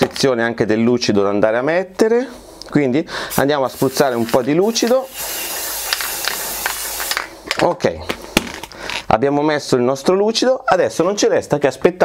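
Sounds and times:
aerosol spray can hissing: 3.3s - 7.4s.

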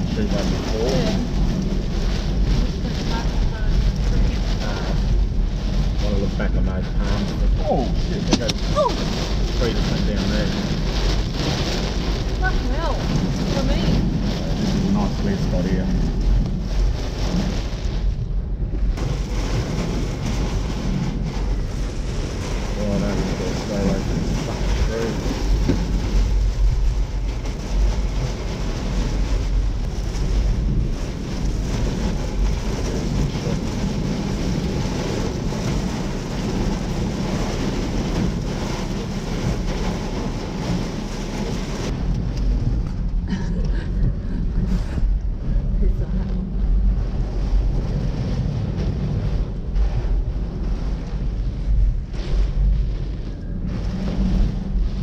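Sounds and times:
wind and rain buffeting a car: 0.0s - 55.0s.

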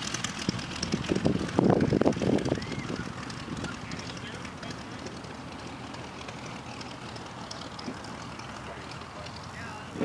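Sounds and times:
biplane engine running: 0.0s - 10.0s
wind on microphone: 0.2s - 4.1s, 9.8s - 10.0s.

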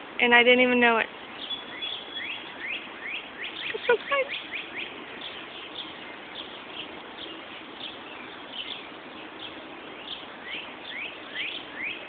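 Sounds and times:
songbirds chirping: 0.0s - 12.0s
steady outdoor hiss: 0.0s - 12.0s.

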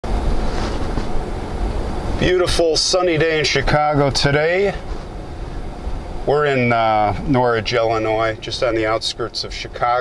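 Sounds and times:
car road and engine rumble: 0.0s - 10.0s.

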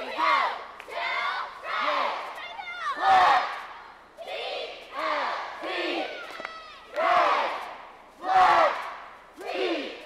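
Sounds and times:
cheerleaders shouting in unison: 0.0s - 10.0s.

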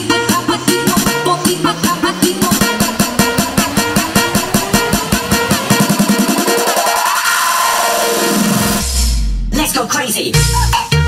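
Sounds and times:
deep bass drop: 0.0s - 7.5s, 8.1s - 9.7s
electronic dance music: 0.0s - 11.0s.

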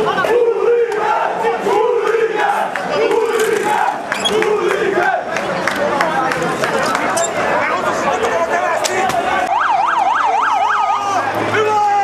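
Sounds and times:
crowd voices: 0.0s - 12.0s
police siren yelping: 9.4s - 11.4s.

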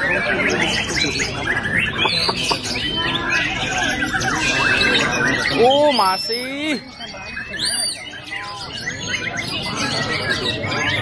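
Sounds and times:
songbirds chirping and trilling: 0.0s - 11.0s.

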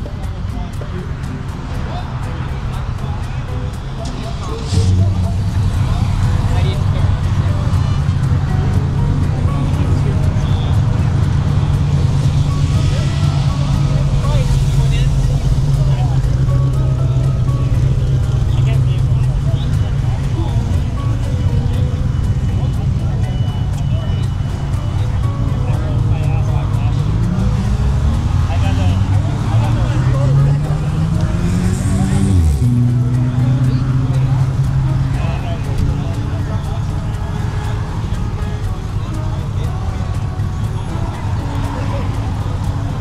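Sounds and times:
car engine idling: 0.0s - 43.0s
faint music: 0.0s - 43.0s
voices: 0.0s - 43.0s.

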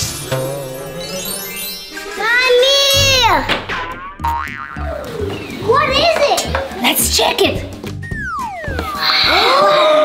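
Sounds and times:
light background music: 0.0s - 10.0s.

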